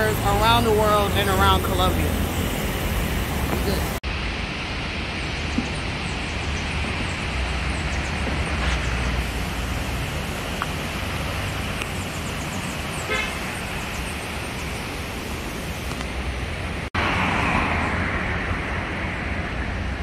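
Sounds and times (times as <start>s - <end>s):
street traffic: 0.0s - 4.1s, 5.4s - 20.0s
horn toot: 13.0s - 13.6s.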